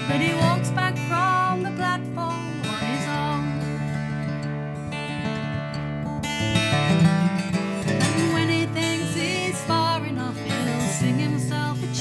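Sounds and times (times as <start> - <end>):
woman singing: 0.0 - 4.2, 7.8 - 12.0
acoustic guitar strumming: 0.0 - 12.0.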